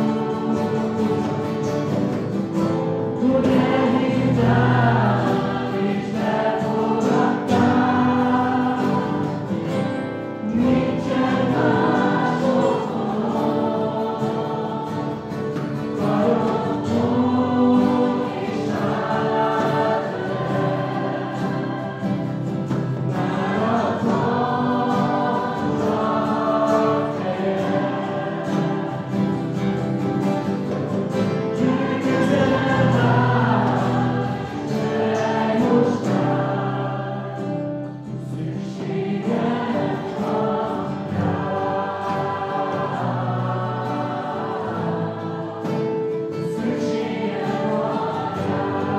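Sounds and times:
group singing worship song: 0:00.0 - 0:48.9
strummed acoustic guitars: 0:00.0 - 0:48.9.

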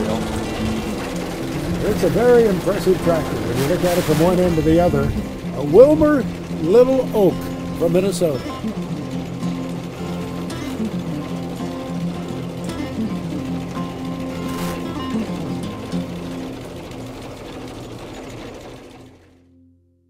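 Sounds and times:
background music: 0:00.0 - 0:17.5
rapid mechanical clatter: 0:00.0 - 0:19.4.

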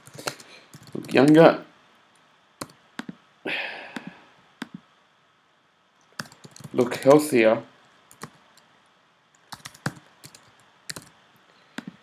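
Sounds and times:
breathy hiss: 0:03.4 - 0:04.4.

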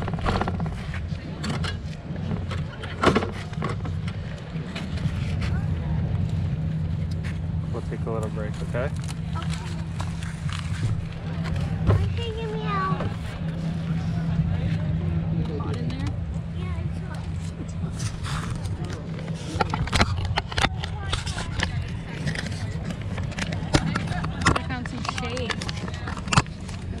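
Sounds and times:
faint voices: 0:00.0 - 0:27.0
low rumble: 0:00.0 - 0:27.0.

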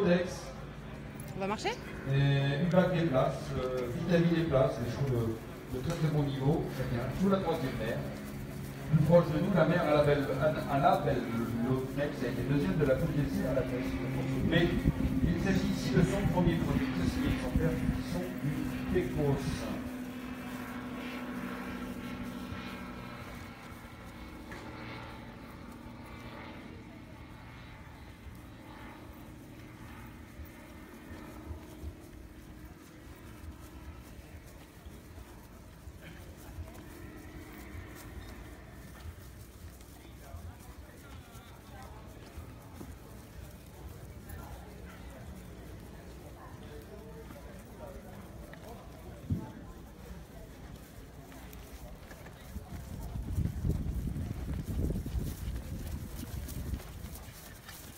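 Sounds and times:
faint distant voices: 0:00.0 - 0:57.9
steady low rumble: 0:00.0 - 0:57.9.

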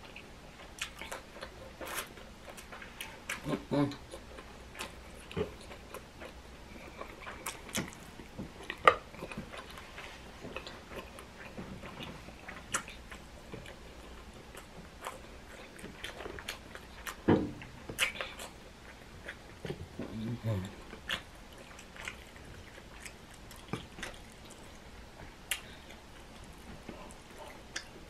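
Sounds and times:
chewing and mouth sounds: 0:00.0 - 0:28.0
person humming mm: 0:20.0 - 0:20.7.

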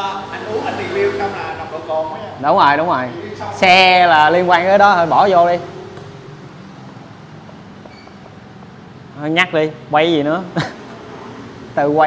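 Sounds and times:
shop background hum: 0:00.0 - 0:12.0.

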